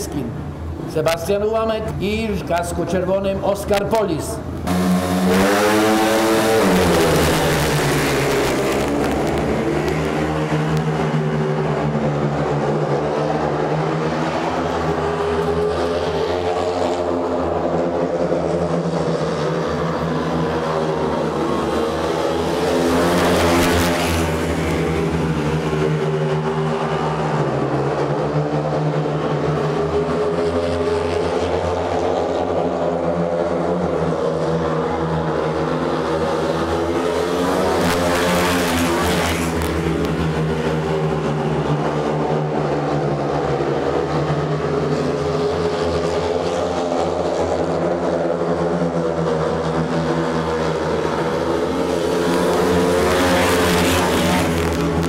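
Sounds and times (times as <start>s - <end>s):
motorcycles accelerating and racing: 0.0s - 55.0s.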